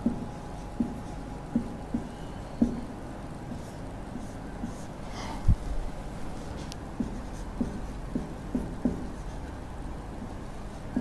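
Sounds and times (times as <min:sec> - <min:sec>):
marker squeaking on whiteboard: 0:00.0 - 0:05.1, 0:07.0 - 0:09.6.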